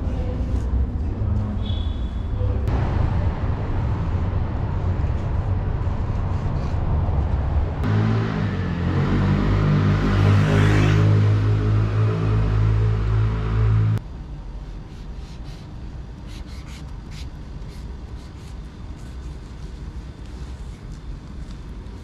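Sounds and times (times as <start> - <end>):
low street rumble: 0.0 - 22.0
car passing: 7.0 - 14.0.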